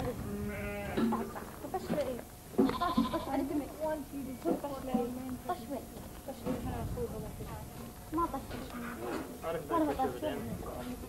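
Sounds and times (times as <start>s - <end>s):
sheep and goats bleating: 0.2s - 1.4s, 2.6s - 3.6s.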